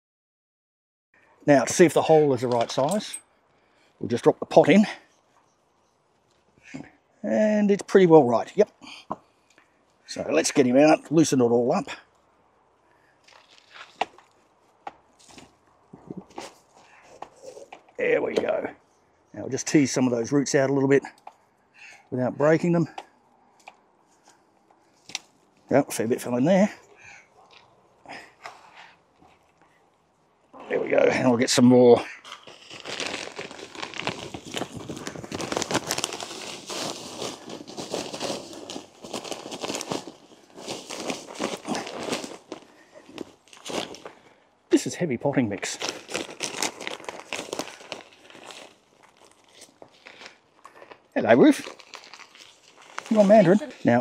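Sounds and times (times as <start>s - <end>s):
soil rustling: 12.9s - 18.7s, 21.4s - 54.0s
plastic bag crinkling: 13.2s - 14.4s, 32.2s - 44.2s, 45.6s - 54.0s.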